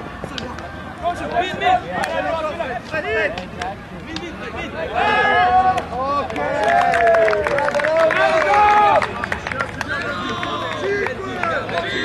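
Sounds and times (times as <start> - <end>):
people shouting: 4.8 - 9.1, 10.0 - 12.0
sharp claps: 5.7 - 12.0.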